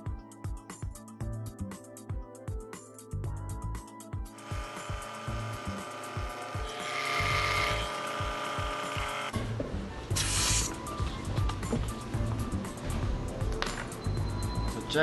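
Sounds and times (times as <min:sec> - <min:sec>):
background music with steady beat: 0:00.0 - 0:15.0
electric air compressor running: 0:04.4 - 0:09.4, 0:10.2 - 0:10.7
loud hiss of air: 0:10.1 - 0:10.8.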